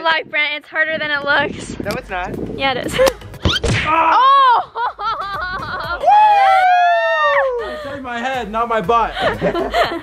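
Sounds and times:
laughter: 4.5s - 6.1s, 9.2s - 10.0s.

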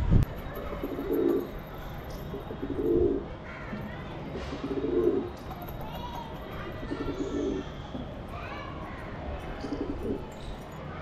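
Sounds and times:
pigeons cooing: 0.6s - 3.3s, 4.4s - 7.8s, 9.6s - 10.4s.

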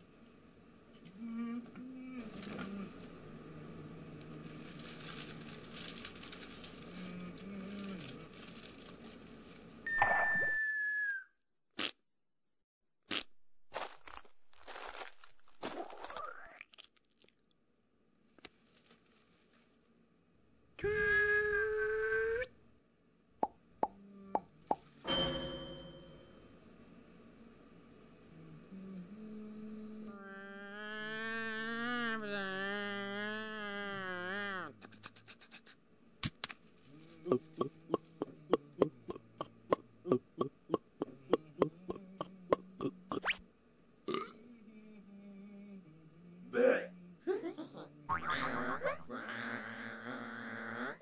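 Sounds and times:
whistle-like tone: 9.9s - 11.4s
person making vocal sounds: 28.7s - 35.8s, 36.9s - 43.4s, 44.1s - 51.0s.

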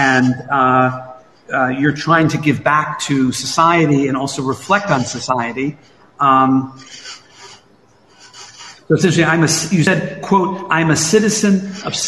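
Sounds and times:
man speaking: 0.0s - 7.5s, 8.2s - 12.0s.

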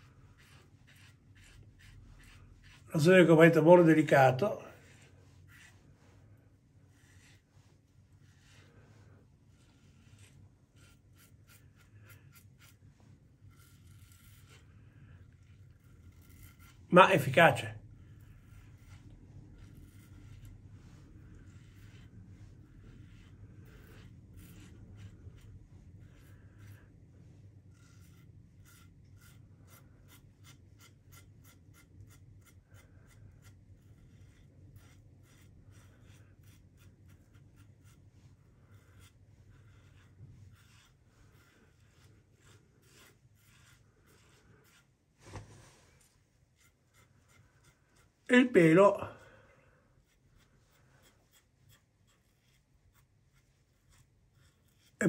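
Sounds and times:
razor scraping stubble: 0.0s - 6.2s, 6.9s - 45.4s, 46.0s - 49.0s, 50.0s - 55.0s.

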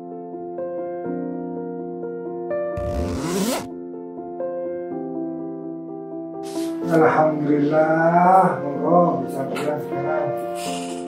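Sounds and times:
soft background music: 0.0s - 11.0s
zipper pulled shut: 2.8s - 3.7s.

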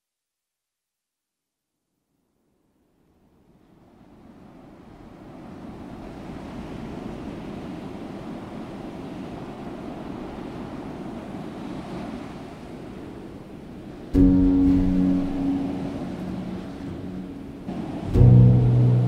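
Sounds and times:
ocean waves washing: 3.6s - 19.0s.

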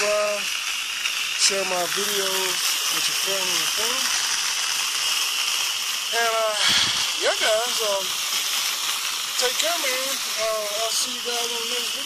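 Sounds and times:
foam gun spraying water: 0.0s - 12.0s.

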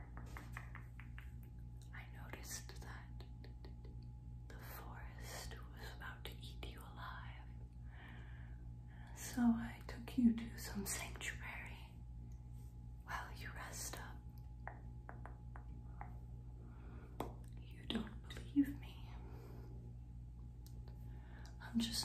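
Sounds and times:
steady low hum: 0.0s - 22.0s
woman whispering: 1.8s - 7.7s, 9.0s - 12.0s, 13.0s - 16.2s, 17.4s - 19.6s, 21.4s - 22.0s.

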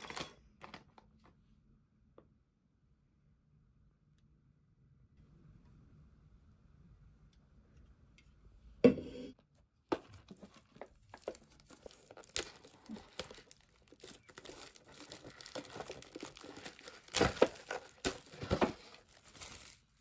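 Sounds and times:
plastic wrap crinkling and tearing: 10.3s - 20.0s.

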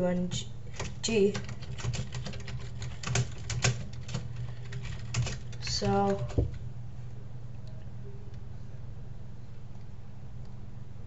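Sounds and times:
steady low hum: 0.0s - 11.0s
keyboard keys clicking: 0.8s - 6.6s.

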